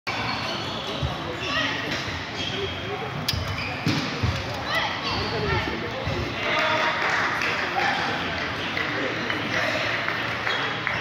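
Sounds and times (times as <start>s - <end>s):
murmur of voices: 0.1s - 11.0s.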